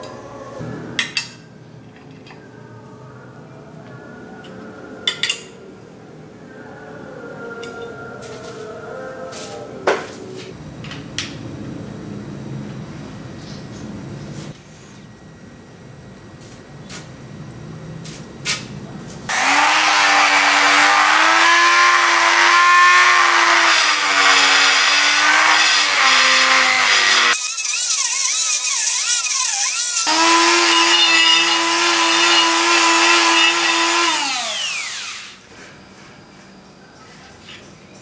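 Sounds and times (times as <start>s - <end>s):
rotary tool grinding metal: 19.3s - 35.4s.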